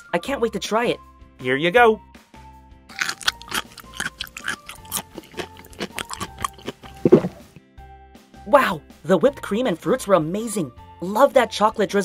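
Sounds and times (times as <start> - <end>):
soft background music: 0.0 - 12.0
crunching munching bites: 2.9 - 7.6.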